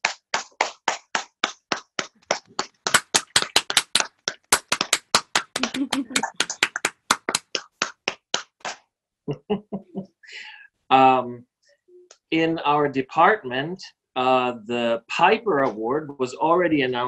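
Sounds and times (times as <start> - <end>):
hands clapping in applause: 0.0 - 8.8.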